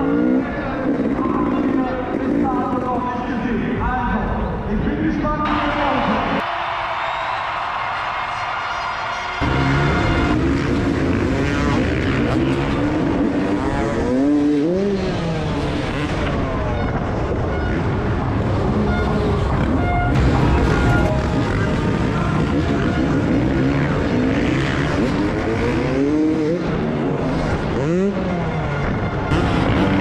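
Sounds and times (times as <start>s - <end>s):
dirt bike engine revving: 0.0s - 3.2s, 9.4s - 30.0s.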